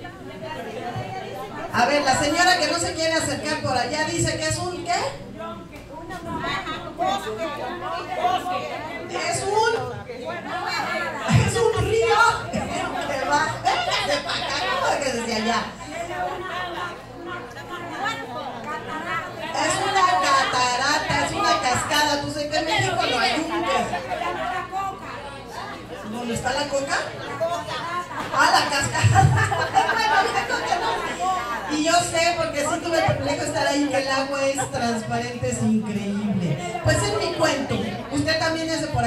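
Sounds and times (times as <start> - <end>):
overlapping audience chatter: 0.0 - 39.0.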